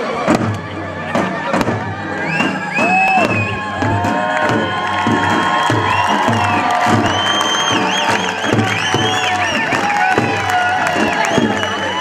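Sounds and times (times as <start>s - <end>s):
crowd cheering: 0.0s - 12.0s
frame drums playing a beat: 0.2s - 12.0s.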